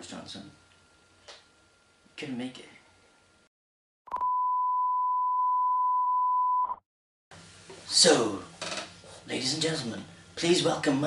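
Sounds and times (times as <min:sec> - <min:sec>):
high-pitched test tone beep: 0:04.1 - 0:06.8.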